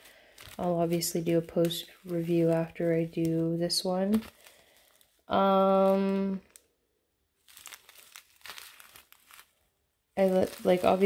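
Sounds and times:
plastic bags crinkling: 0:00.0 - 0:06.7, 0:07.4 - 0:11.0.

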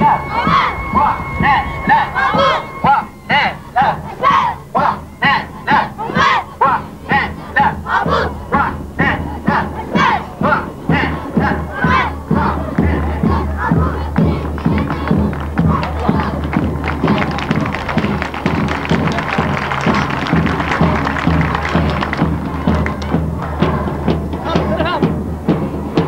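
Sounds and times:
steady drum beat: 0:00.0 - 0:04.5, 0:05.2 - 0:26.0
voices chanting: 0:00.0 - 0:26.0.

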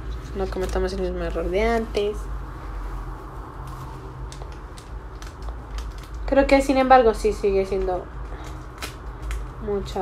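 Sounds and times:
steady low hum: 0:00.0 - 0:10.0
plastic packet crinkling: 0:03.6 - 0:10.0.

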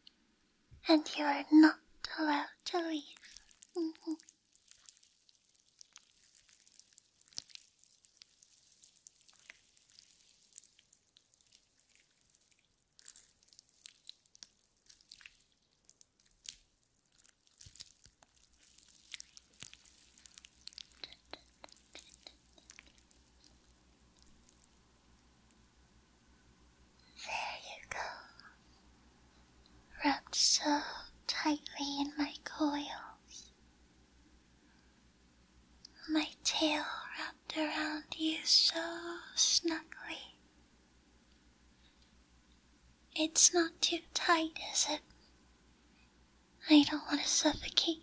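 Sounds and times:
woman whispering: 0:00.8 - 0:04.2, 0:21.0 - 0:22.4, 0:27.1 - 0:28.6, 0:29.9 - 0:33.5, 0:35.9 - 0:40.4, 0:43.2 - 0:45.0, 0:46.6 - 0:48.0.

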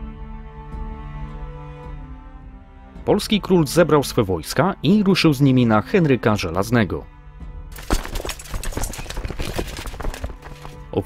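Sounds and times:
quiet background music: 0:00.0 - 0:11.0
horses hooves clip-clopping: 0:07.8 - 0:10.8.

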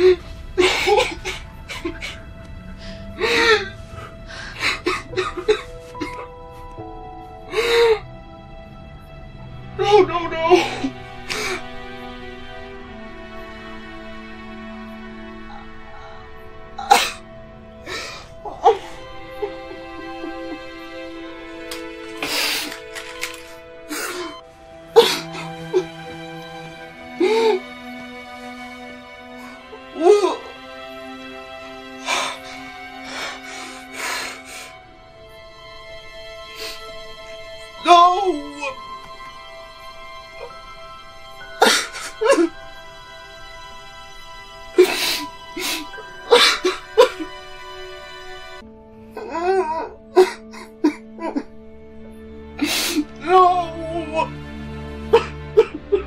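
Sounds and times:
sad music: 0:00.0 - 0:56.0.

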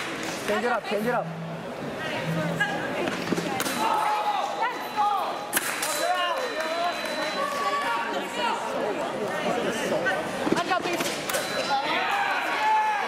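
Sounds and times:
people shouting: 0:11.8 - 0:13.0.

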